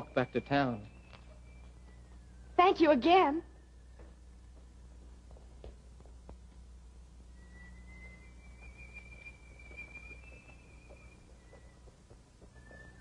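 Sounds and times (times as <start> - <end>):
old film sound hum: 0.0 - 13.0
person whistling: 7.4 - 11.9, 12.5 - 13.0.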